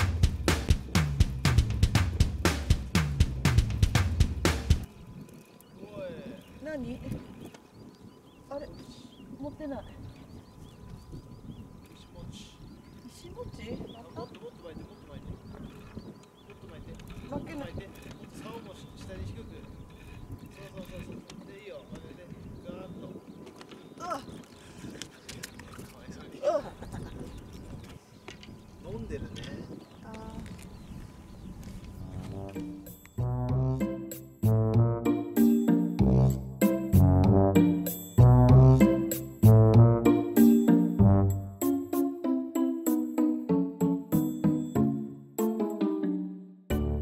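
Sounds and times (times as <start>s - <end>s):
birds wavering calls: 4.8s - 33.0s.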